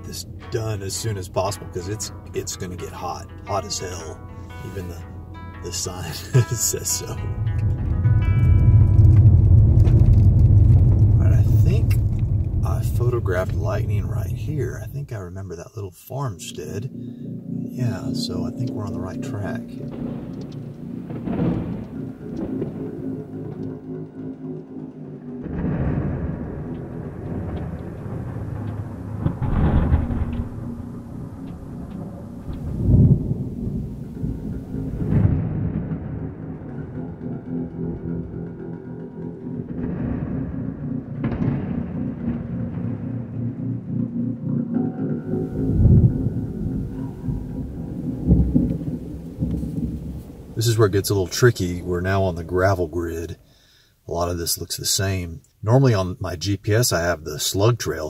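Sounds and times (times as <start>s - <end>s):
background music with sustained tones: 0.0s - 14.8s, 16.1s - 50.6s
rolling thunder: 5.7s - 15.2s, 16.9s - 24.0s, 25.4s - 38.6s, 39.6s - 53.4s.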